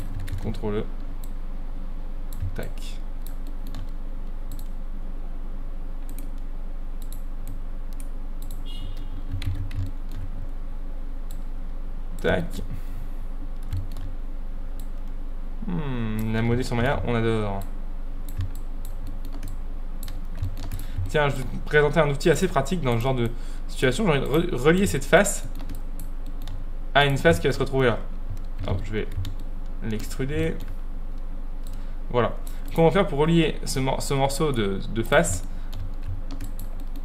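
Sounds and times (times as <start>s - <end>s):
keyboard keys clicking: 0.0s - 0.6s, 2.3s - 4.7s, 6.1s - 10.6s, 13.5s - 14.1s, 18.3s - 21.2s, 25.4s - 26.6s, 28.3s - 30.8s, 35.2s - 37.0s
steady low hum: 0.0s - 37.0s
computer keyboard taps: 9.2s - 10.3s, 18.3s - 21.2s.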